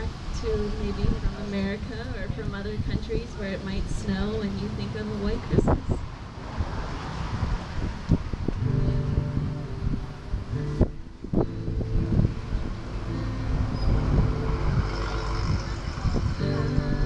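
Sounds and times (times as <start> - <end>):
wind rumble on microphone: 0.0 - 17.0
acoustic guitar strumming: 8.5 - 17.0.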